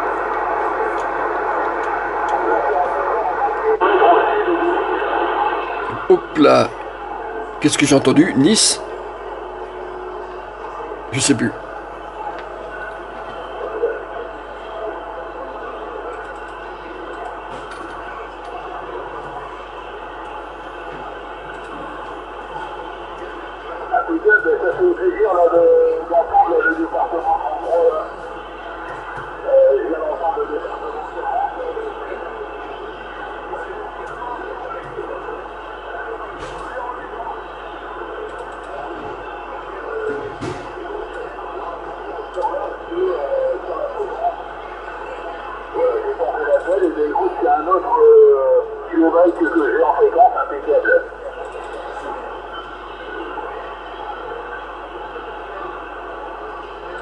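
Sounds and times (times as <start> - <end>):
radio static hiss: 0.0 - 8.7
garbled radio voices: 0.0 - 9.6, 18.7 - 56.9.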